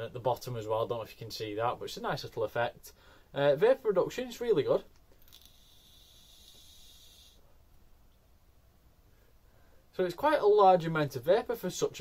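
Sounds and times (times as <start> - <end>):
vape draw hiss: 5.2 - 7.5.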